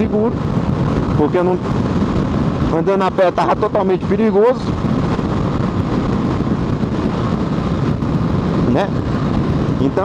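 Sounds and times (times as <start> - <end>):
motorcycle engine running: 0.0 - 10.0
road noise: 0.0 - 10.0
wind: 0.0 - 10.0.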